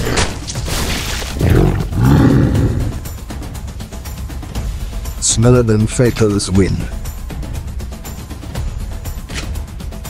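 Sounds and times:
big cat roars: 1.4 - 3.1.

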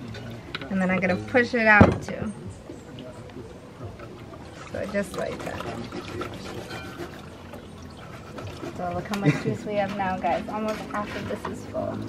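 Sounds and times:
juice trickling into a pitcher: 2.6 - 12.0.

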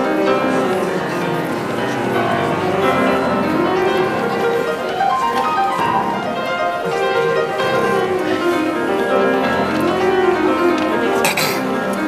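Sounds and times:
grand piano boogie-woogie: 0.0 - 12.0.

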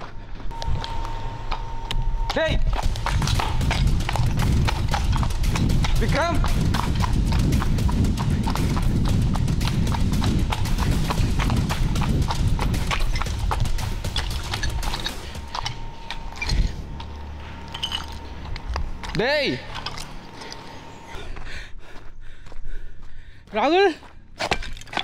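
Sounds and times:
running footsteps on rubble: 0.0 - 25.0.

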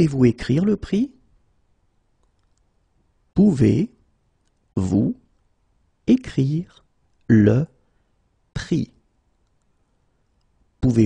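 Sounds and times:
person speaking: 0.0 - 1.2, 3.4 - 4.1, 4.7 - 5.4, 6.0 - 7.8, 8.6 - 9.1, 10.8 - 11.0
computer mouse clicks: 2.1 - 2.8, 4.4 - 4.7, 9.3 - 10.6.

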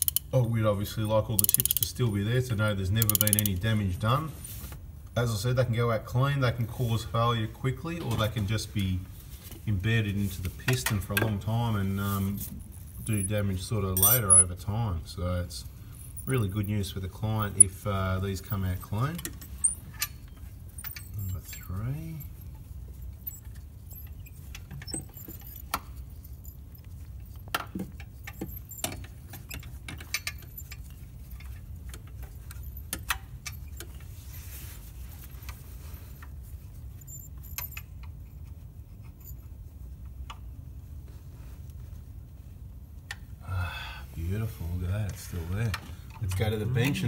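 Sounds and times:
metallic clicks of hand tool: 0.0 - 0.3, 1.4 - 1.9, 3.0 - 3.5.

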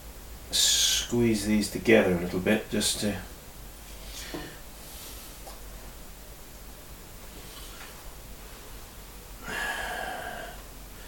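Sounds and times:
low room hum: 0.0 - 11.0
breath out: 9.4 - 10.6.

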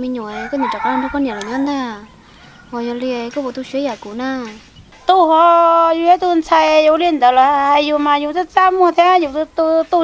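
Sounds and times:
woman talking: 0.0 - 10.0
chicken calling: 0.2 - 3.0.

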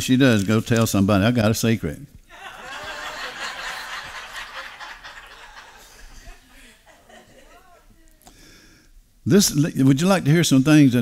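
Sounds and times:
crowd laughing softly: 2.3 - 8.2.

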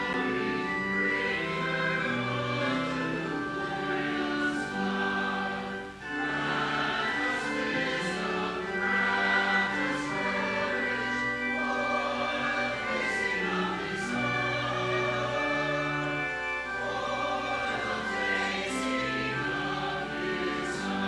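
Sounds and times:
choir and congregation singing hymn: 0.0 - 21.0.

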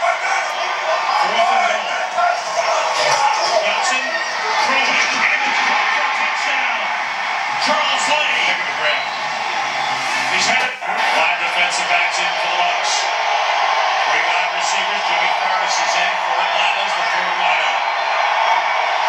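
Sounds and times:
indistinct voices on tv: 0.0 - 19.0
stadium crowd noise: 0.0 - 19.0.

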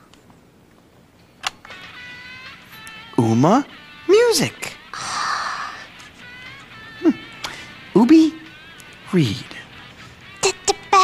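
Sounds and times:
tinny music from headphones: 0.0 - 11.0.

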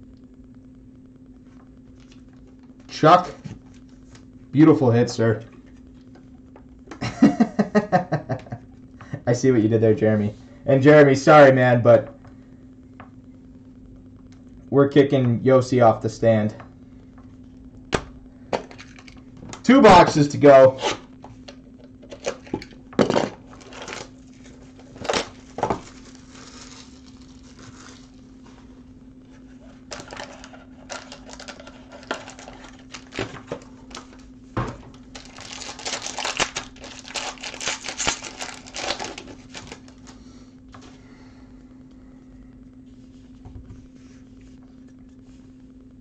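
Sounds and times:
faint low hum: 0.0 - 46.0
plastic wrapping crinkling and tearing: 22.0 - 28.6, 29.5 - 34.3, 34.9 - 40.2.

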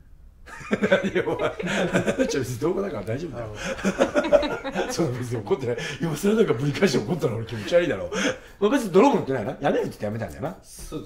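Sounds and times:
men laughing: 0.5 - 8.6
men talking: 0.6 - 11.0.

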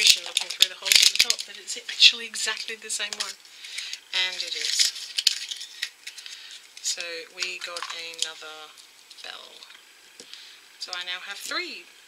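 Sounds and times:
plastic clicks and rattles: 0.0 - 1.5, 2.5 - 8.3.

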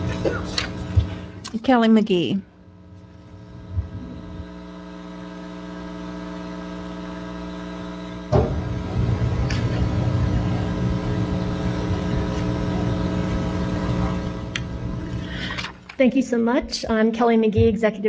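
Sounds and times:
steady electrical hum: 0.0 - 18.0
microphone handling rumble: 2.9 - 4.8, 8.1 - 15.6.

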